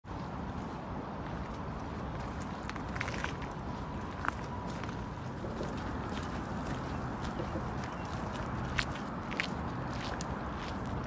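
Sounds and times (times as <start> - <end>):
low outdoor rumble: 0.1 - 11.0.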